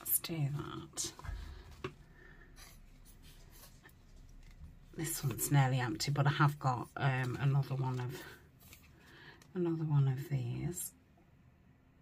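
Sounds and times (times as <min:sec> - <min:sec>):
paper rustling: 0:02.6 - 0:09.3.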